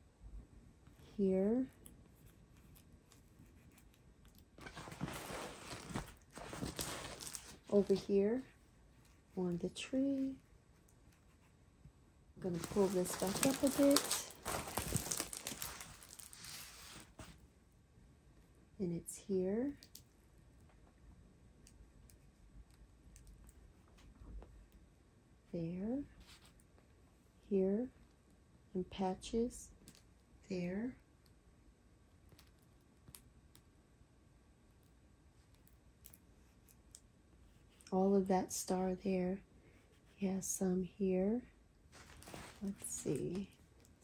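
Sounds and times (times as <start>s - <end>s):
plastic film crinkling: 4.6s - 8.1s, 12.4s - 17.3s, 42.0s - 43.4s.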